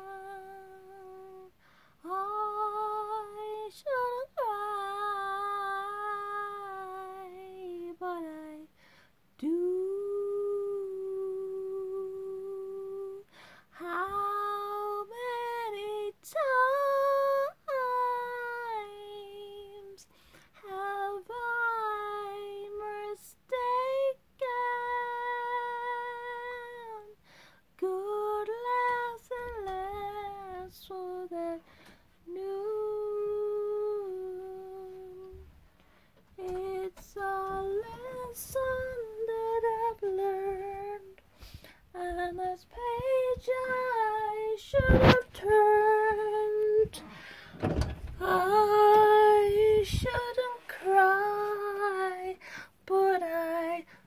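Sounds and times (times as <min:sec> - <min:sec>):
woman singing a slow ballad: 0:00.0 - 0:35.6, 0:36.3 - 0:54.0
breaths: 0:01.6 - 0:02.0, 0:08.7 - 0:09.3, 0:13.2 - 0:13.8, 0:20.1 - 0:20.6, 0:27.2 - 0:27.7, 0:31.6 - 0:32.2, 0:35.7 - 0:36.3, 0:41.2 - 0:41.9, 0:47.0 - 0:47.7, 0:52.4 - 0:52.8.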